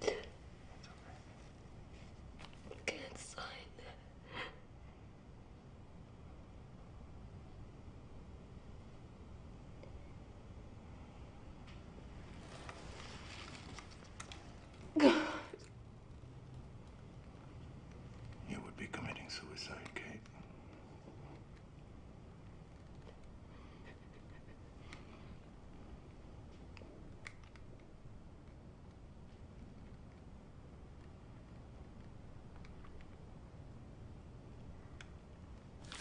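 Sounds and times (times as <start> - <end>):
woman sobbing: 14.9 - 15.6
woman crying quietly: 14.9 - 15.7.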